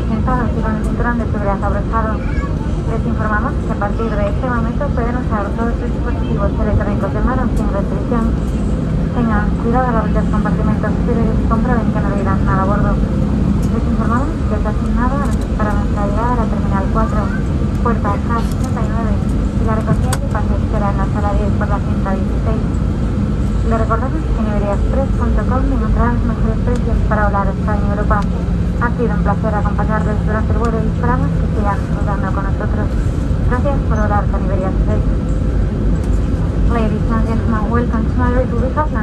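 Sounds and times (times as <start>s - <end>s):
aircraft cabin rumble: 0.0s - 39.0s.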